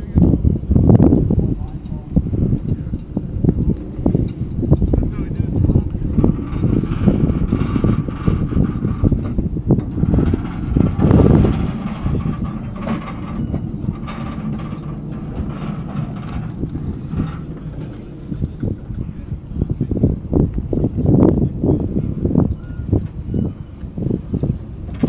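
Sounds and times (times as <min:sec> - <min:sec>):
faint steady whine: 0:00.0 - 0:25.0
trailer rattling and clanking: 0:01.3 - 0:20.0.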